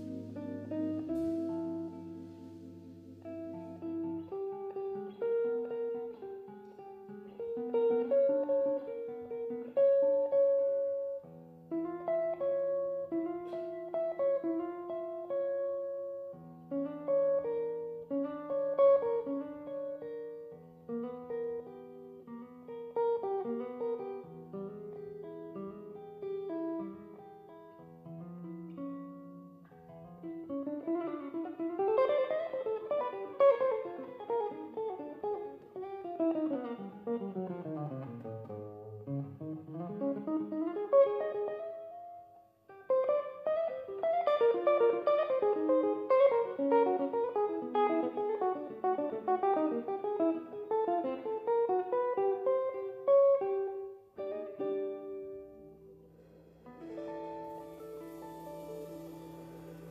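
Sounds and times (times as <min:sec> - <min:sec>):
jazz guitar ballad: 0:00.0 - 0:59.9.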